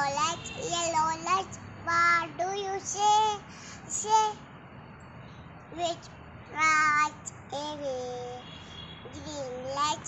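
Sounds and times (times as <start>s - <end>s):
little girl singing: 0.0s - 4.4s, 5.7s - 8.4s, 9.1s - 10.0s.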